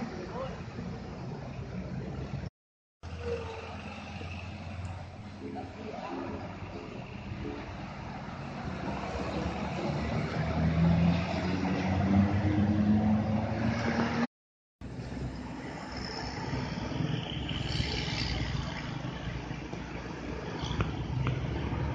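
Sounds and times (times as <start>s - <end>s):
coach diesel engines passing: 0.0s - 21.9s
road noise: 0.0s - 21.9s.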